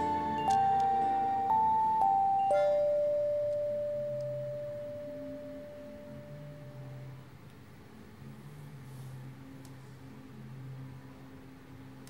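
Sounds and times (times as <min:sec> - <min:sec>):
electronic keyboard note: 0:00.0 - 0:07.2.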